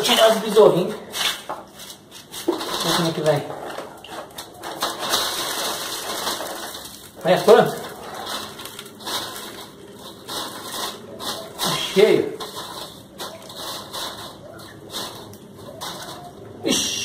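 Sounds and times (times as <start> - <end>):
dry substrate rustling and clicking: 0.0 - 16.6.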